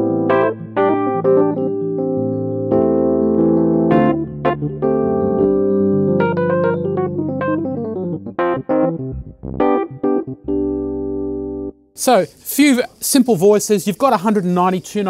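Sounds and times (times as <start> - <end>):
electric piano playing: 0.0 - 11.9.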